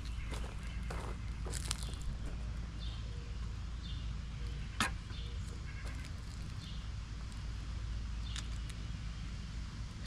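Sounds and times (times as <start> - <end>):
rustling of hand-weeding: 0.0 - 2.4
low outdoor rumble: 0.0 - 10.0.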